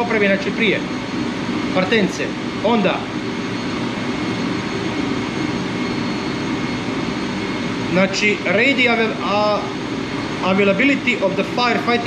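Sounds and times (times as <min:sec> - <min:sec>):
engine room machinery: 0:00.0 - 0:12.0
faint high whine: 0:00.0 - 0:12.0
ventilation noise: 0:00.0 - 0:12.0.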